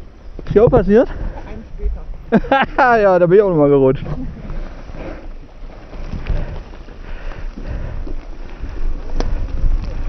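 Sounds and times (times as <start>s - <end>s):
bike rattling: 0.0s - 10.0s
wind buffeting microphone: 0.0s - 10.0s
tyre rumble on dirt trail: 3.8s - 10.0s.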